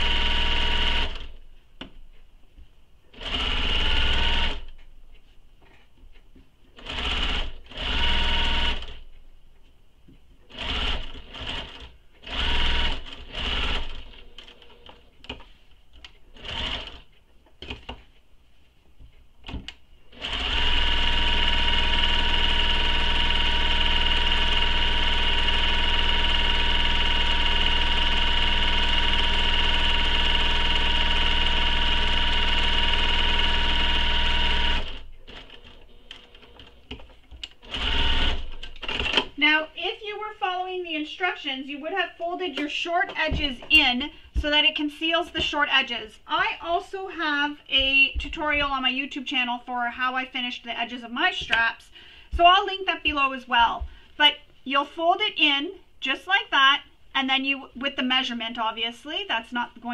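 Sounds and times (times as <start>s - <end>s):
sewing machine stitching: 0.0s - 1.4s, 3.1s - 4.8s, 6.8s - 9.0s, 10.5s - 15.0s, 16.3s - 17.1s, 20.1s - 39.4s.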